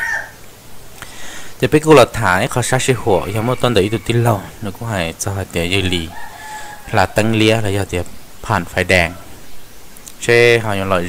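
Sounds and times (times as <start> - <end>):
rooster crowing faintly: 0.0 - 0.4, 2.8 - 4.8, 5.8 - 8.0
man narrating: 1.6 - 9.4, 10.1 - 11.0.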